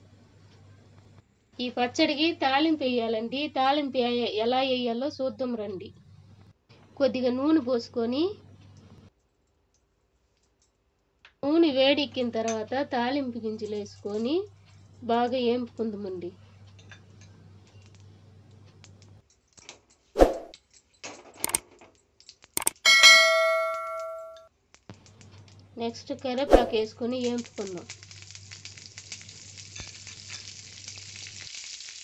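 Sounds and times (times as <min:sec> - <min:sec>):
woman speaking: 0:01.6 - 0:05.9, 0:07.0 - 0:08.4, 0:11.4 - 0:16.3, 0:25.8 - 0:27.9
quick clicks: 0:21.4 - 0:21.6, 0:22.6 - 0:22.8
bell chime: 0:22.6 - 0:24.4.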